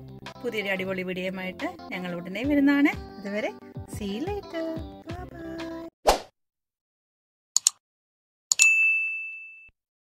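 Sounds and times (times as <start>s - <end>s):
high ding: 8.6s - 9.7s.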